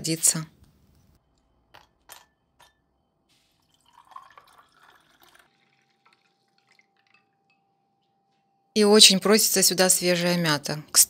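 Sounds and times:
drink pouring over ice: 3.3 - 7.6.

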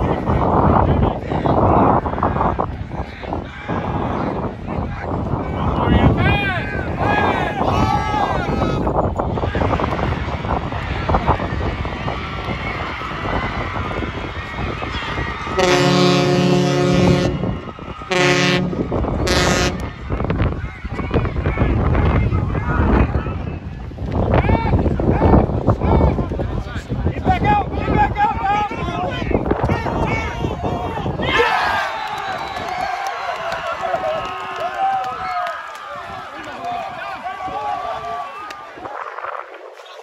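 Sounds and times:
crowd shouting and cheering: 0.0 - 40.0
multi-tone horn blasts: 15.5 - 19.9.

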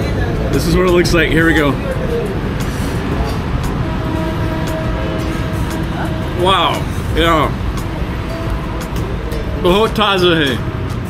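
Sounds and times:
low street rumble: 0.0 - 11.0
steady pitched tone: 0.0 - 11.0.

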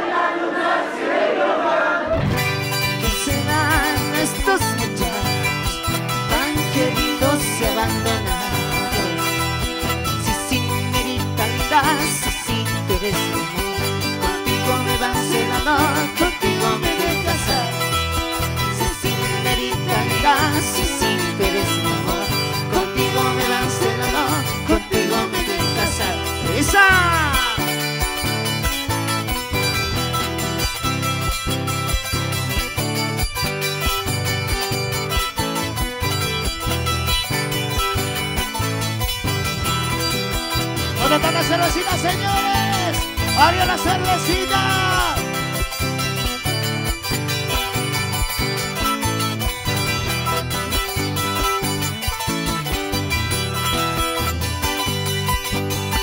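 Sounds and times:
guitars: 2.0 - 56.0
strummed charango: 2.1 - 56.0
bass: 2.2 - 56.0.

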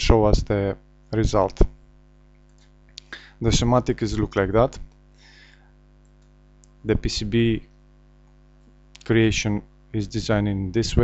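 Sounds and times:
person speaking: 0.0 - 1.8, 3.0 - 4.9, 6.8 - 7.7, 9.0 - 11.0
low electrical hum: 0.0 - 11.0
short breath: 3.0 - 3.4, 5.2 - 5.8.

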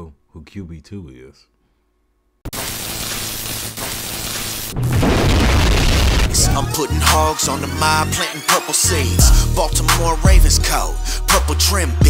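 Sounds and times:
sudden hit: 4.7 - 6.7
deep booming rumble: 4.8 - 6.7
hip hop intro music: 6.2 - 12.0.

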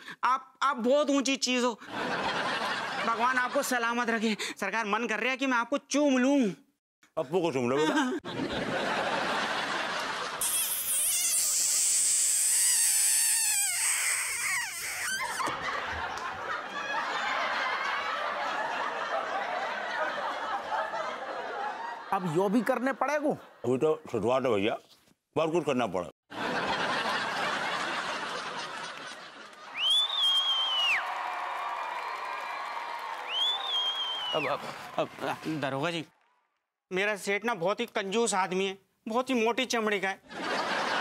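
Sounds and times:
crowd laughing and cheering: 1.9 - 3.7, 7.8 - 10.6, 14.6 - 22.8, 26.3 - 33.4, 40.3 - 41.0
comic kiss sound effect: 10.4 - 15.5.

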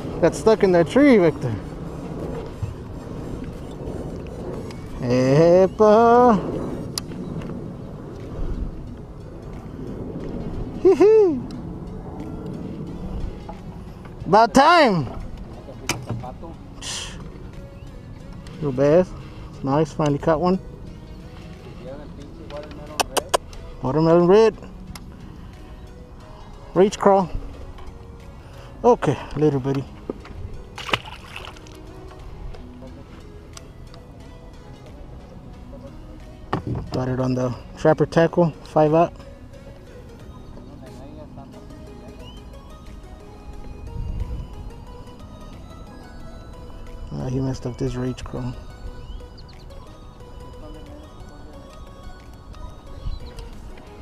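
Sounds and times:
low rumble of wind and water: 0.0 - 54.0
fish splashing into water: 30.8 - 31.8.

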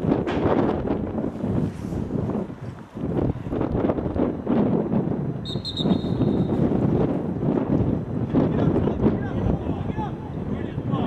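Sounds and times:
wind buffeting microphone: 0.0 - 11.0
referee whistle: 5.4 - 6.6.

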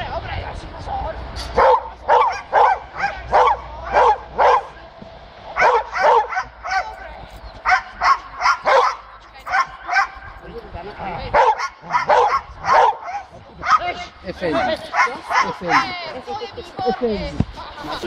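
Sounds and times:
dog barking: 1.6 - 4.8, 5.6 - 7.0, 7.6 - 10.2, 11.3 - 13.9, 14.6 - 15.9.

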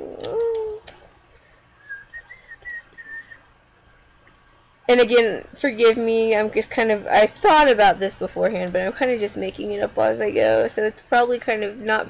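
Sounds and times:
person softly whistling: 1.8 - 3.5.

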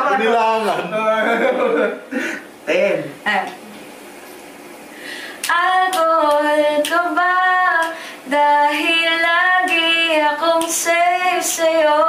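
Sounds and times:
woman singing unaccompanied: 5.4 - 12.0.

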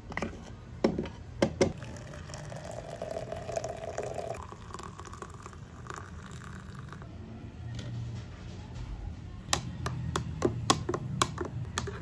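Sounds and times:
water pouring into a glass press: 1.8 - 7.0.

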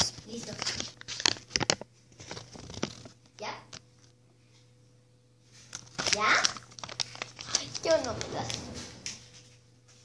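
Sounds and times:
paper crinkling and rustling: 0.0 - 3.2, 5.5 - 9.6.

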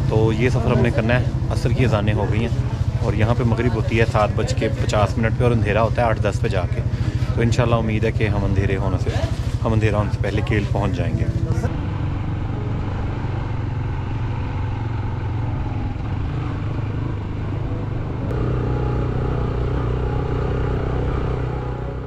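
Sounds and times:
road noise: 0.0 - 22.0
vehicle engine running: 0.0 - 22.0.

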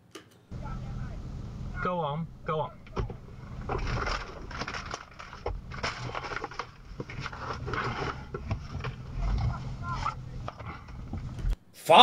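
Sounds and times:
faint voices: 0.5 - 11.6
low engine hum: 0.5 - 11.6
small knocks: 0.6 - 11.6.

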